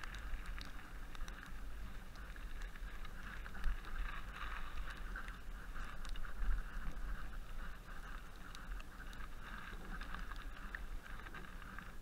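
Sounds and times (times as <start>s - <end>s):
bike tyre and riding noise: 0.0s - 12.0s
wind rumble on microphone: 0.0s - 12.0s.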